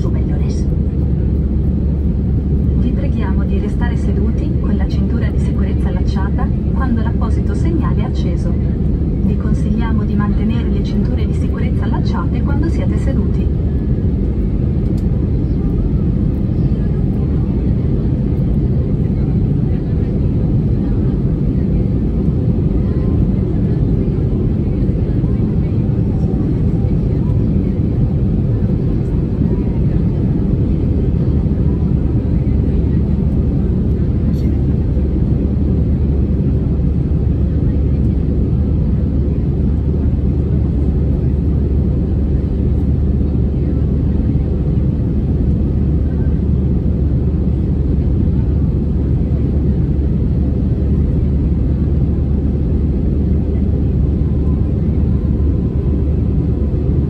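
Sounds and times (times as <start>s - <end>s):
jet engine cabin drone: 0.0s - 57.0s.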